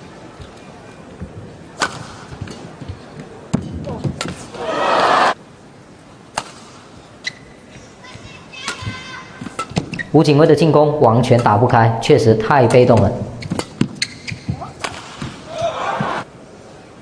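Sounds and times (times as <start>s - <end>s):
crowd cheering: 4.5s - 5.4s, 15.5s - 16.3s
rackets striking shuttlecock: 11.3s - 11.8s, 12.8s - 15.4s.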